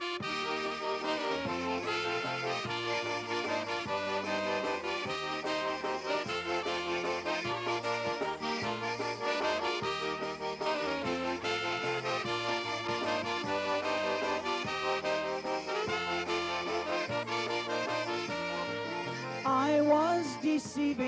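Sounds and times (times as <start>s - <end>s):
bass line: 0.0s - 21.0s
piano accordion: 0.0s - 21.0s
polka band playing: 0.0s - 21.0s
saxophone: 0.0s - 21.0s
trumpet: 0.0s - 21.0s.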